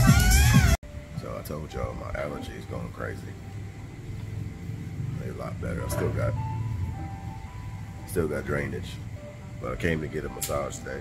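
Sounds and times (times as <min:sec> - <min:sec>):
thin electronic melody: 0:00.0 - 0:11.0
steady low hum: 0:00.8 - 0:11.0.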